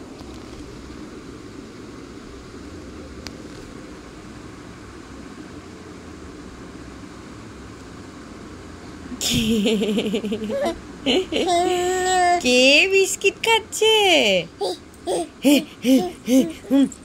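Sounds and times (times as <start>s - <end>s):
background hum and hiss: 0.0s - 17.0s.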